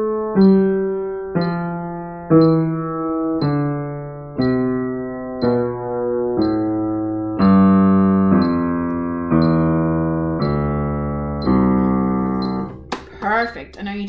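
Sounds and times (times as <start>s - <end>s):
piano playing a slow scale: 0.0s - 13.2s
woman talking: 13.0s - 14.0s.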